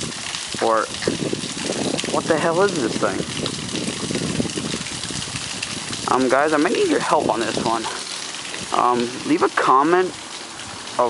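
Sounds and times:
river water flowing: 0.0 - 11.0.

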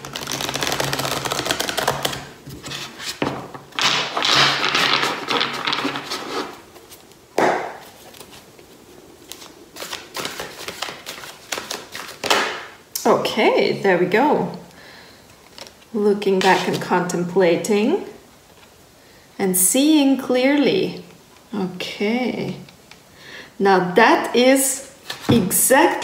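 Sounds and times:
cards riffle shuffling: 0.0 - 8.5, 9.2 - 12.6
cards overhand shuffling: 0.0 - 12.7, 25.0 - 25.6.

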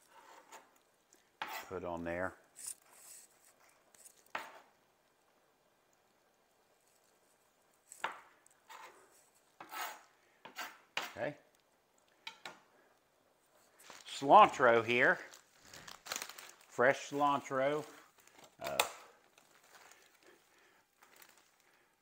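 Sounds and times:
knife cutting on a cutting board: 7.9 - 11.2.

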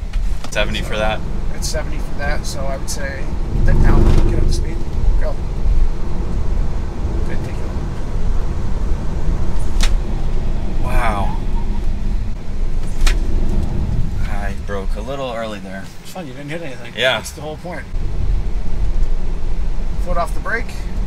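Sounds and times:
tyre and road noise rumble: 0.0 - 21.0.

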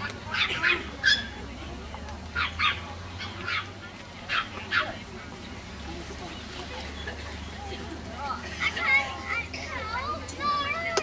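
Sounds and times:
children talking and calling: 0.0 - 11.0.

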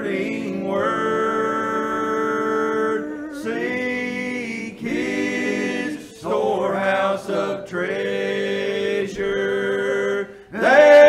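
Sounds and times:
men singing in close harmony: 0.0 - 11.0.

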